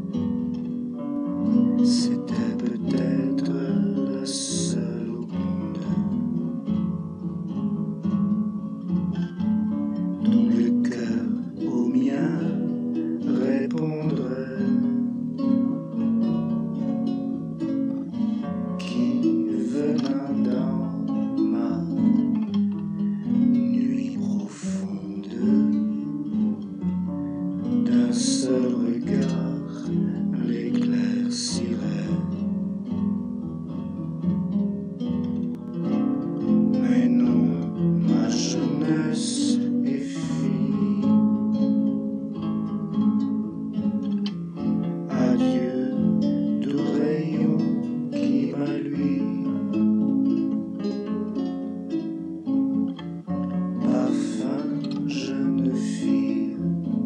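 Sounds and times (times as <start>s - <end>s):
plucked acoustic guitar: 0.0s - 57.0s
person singing: 1.0s - 7.0s, 8.8s - 33.0s, 35.5s - 43.2s, 43.8s - 57.0s.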